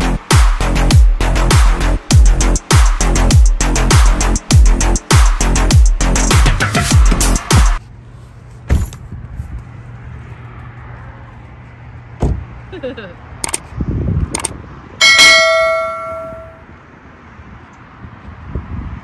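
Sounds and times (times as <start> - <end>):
bell ding: 15.0 - 16.6.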